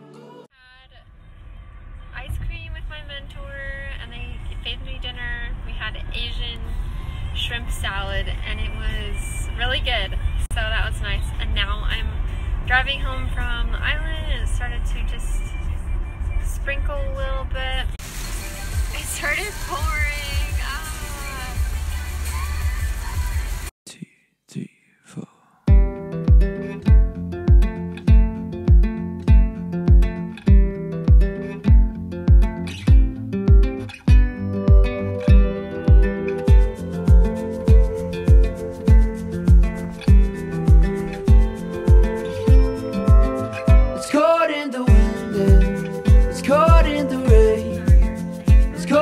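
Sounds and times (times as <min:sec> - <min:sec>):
song playing: 0:00.0 - 0:00.5, 0:25.7 - 0:49.0
woman talking: 0:00.5 - 0:01.0, 0:02.2 - 0:06.7, 0:07.4 - 0:15.6, 0:16.4 - 0:18.0, 0:18.9 - 0:23.3
car engine and tyres rumbling: 0:00.9 - 0:23.7, 0:35.4 - 0:44.2
heavy rain on a car: 0:18.0 - 0:23.7.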